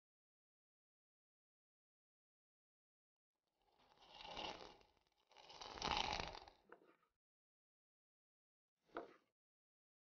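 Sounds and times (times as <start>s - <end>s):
spice grinder grinding: 3.7s - 6.6s.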